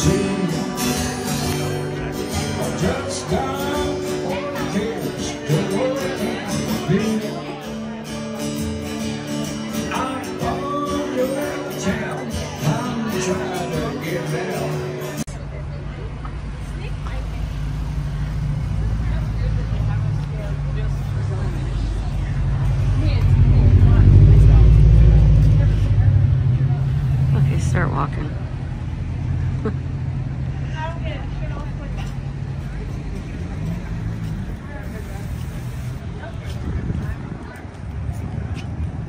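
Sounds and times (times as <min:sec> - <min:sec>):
passers-by talking: 0:00.0 - 0:39.0
vehicle engine passing: 0:10.6 - 0:39.0.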